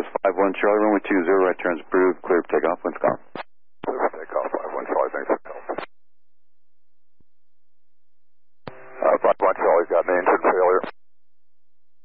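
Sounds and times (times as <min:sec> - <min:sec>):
narrow-band radio speech: 0:00.0 - 0:05.9, 0:08.7 - 0:11.0
radio click: 0:03.3 - 0:05.9
radio tone: 0:03.8 - 0:05.9, 0:08.7 - 0:11.0.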